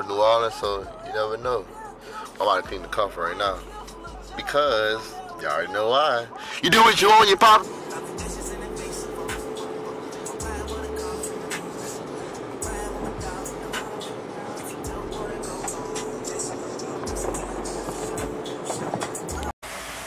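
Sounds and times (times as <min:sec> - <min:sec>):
rap music on car stereo: 0:00.0 - 0:19.6
water spraying on car: 0:10.7 - 0:20.0.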